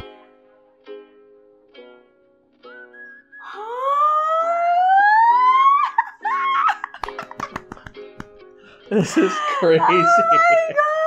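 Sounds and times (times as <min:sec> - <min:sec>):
soft plucked background music: 0:00.0 - 0:11.0
rising squeal of excitement: 0:02.7 - 0:06.6
excited cries and laughter: 0:04.4 - 0:07.6, 0:08.9 - 0:11.0.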